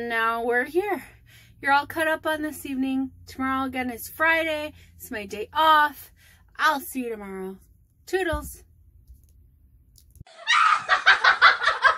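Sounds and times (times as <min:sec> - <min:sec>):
person shrieking laugh: 0:10.3 - 0:11.9.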